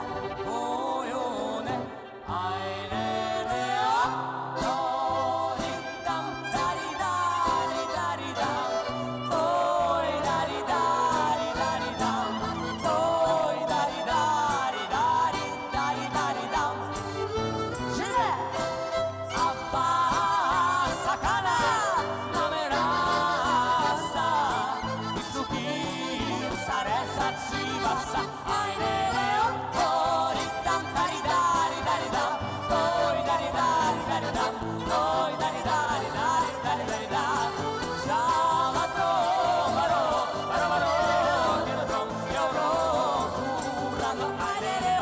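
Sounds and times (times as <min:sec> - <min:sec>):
accordion: 0:00.0 - 0:45.0
guitar: 0:00.0 - 0:45.0
violin: 0:00.0 - 0:45.0.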